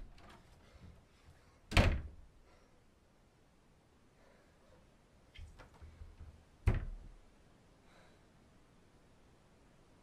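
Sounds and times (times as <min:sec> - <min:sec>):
wooden door thudding: 0:01.7 - 0:02.2, 0:05.6 - 0:07.2.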